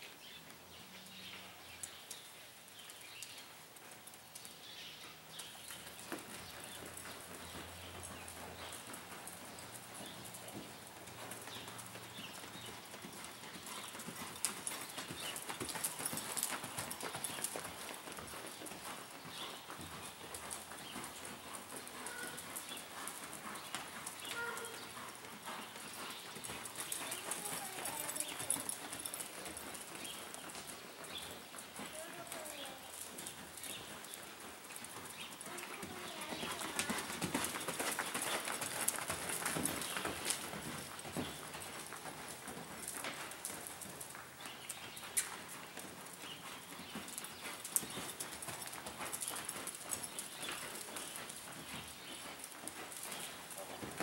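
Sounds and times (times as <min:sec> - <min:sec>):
hooves sliding through dirt: 0:00.1 - 0:54.0
horse hoofbeats on dirt: 0:00.2 - 0:54.0.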